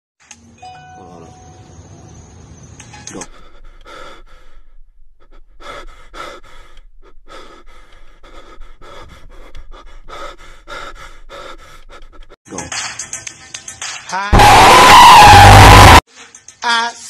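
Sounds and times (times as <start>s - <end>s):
person panting heavily: 3.2s - 12.4s.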